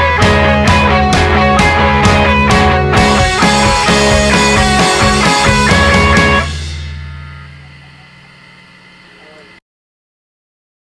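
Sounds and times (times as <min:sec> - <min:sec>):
rock guitar and bass chord: 0:00.0 - 0:09.6
faint hum: 0:06.2 - 0:09.6.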